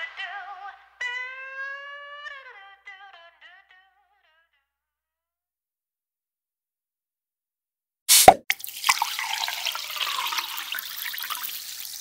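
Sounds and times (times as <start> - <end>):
water splash with low plop: 8.1 - 9.2.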